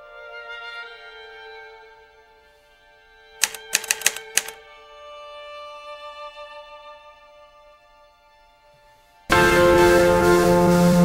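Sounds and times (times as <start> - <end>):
typewriter keys clacking: 3.4 - 4.6.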